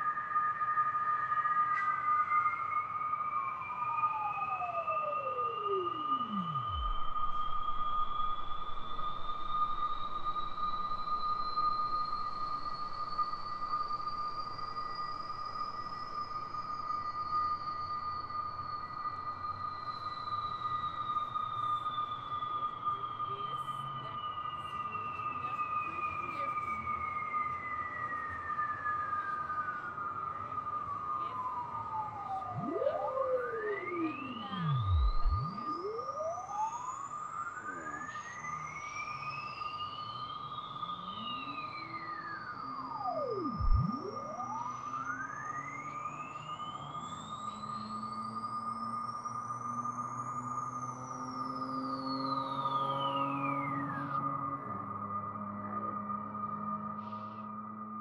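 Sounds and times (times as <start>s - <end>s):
synthesizer sweeps gliding: 3.4s - 16.8s, 31.1s - 58.0s
steady high tone: 4.2s - 14.2s, 31.3s - 38.4s, 39.6s - 46.9s.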